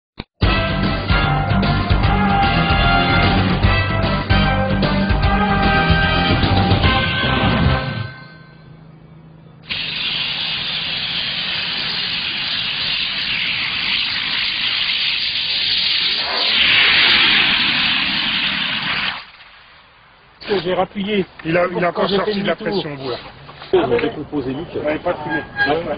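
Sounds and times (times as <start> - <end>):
rocket thrusters hissing: 9.6 - 19.4.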